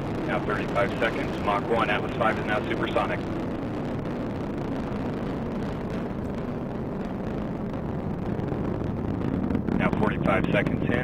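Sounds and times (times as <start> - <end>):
rocket engine roaring: 0.0 - 11.0.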